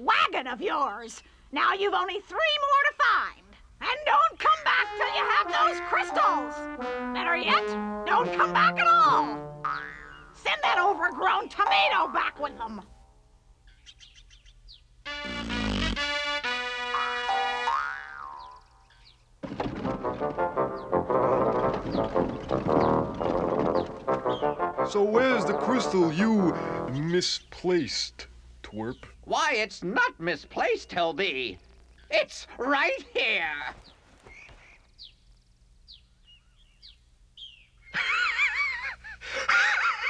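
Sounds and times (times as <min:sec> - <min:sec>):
background music score: 0:04.6 - 0:11.2, 0:15.1 - 0:17.7, 0:19.6 - 0:27.3
cartoon sliding pitch effect: 0:04.8 - 0:10.4, 0:15.1 - 0:18.6.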